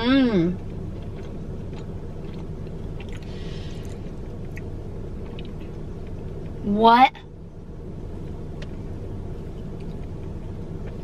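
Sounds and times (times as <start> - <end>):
car idling: 0.0 - 11.0.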